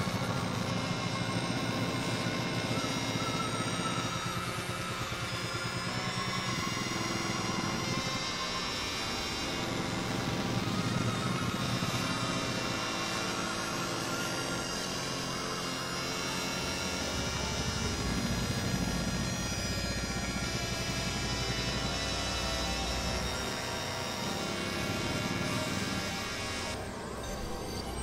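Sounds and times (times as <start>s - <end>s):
synthesizer drone: 0.0s - 28.0s.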